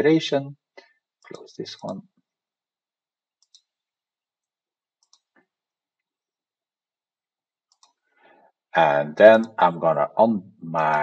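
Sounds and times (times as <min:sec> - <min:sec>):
faint computer mouse clicks: 0:03.4 - 0:03.7, 0:05.0 - 0:05.5, 0:07.7 - 0:08.0.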